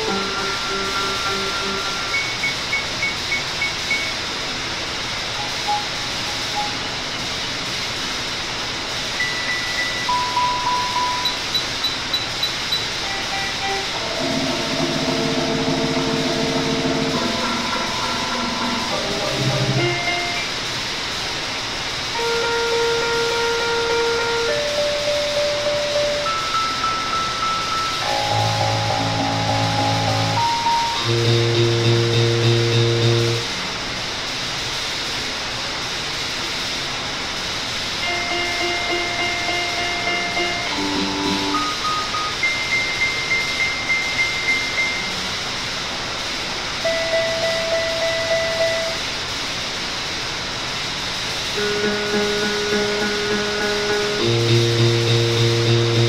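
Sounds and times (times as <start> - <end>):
held synthesizer tones: 0.0 - 4.2, 9.2 - 20.5, 22.2 - 33.5, 38.0 - 45.3
pulsing synthesizer tones: 0.0 - 4.2, 9.2 - 20.5, 23.9 - 33.5
hiss-like noise bed: 0.0 - 56.0.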